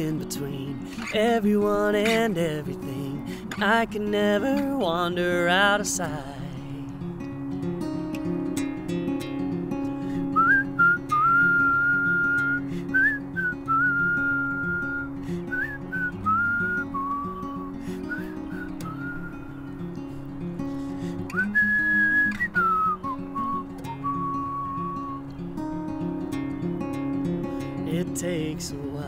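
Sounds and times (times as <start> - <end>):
strummed acoustic guitar: 0.0 - 29.0
man whistling a melody: 10.1 - 20.1, 20.7 - 25.4.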